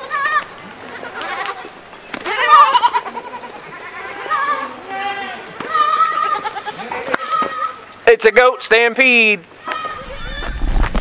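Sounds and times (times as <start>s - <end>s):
goats bleating: 0.0s - 8.7s, 9.5s - 10.6s.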